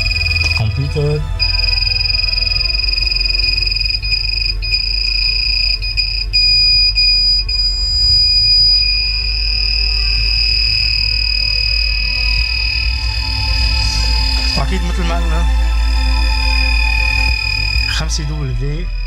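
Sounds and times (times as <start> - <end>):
high-pitched electronic whine: 0.0 - 19.0
low hum: 0.0 - 19.0.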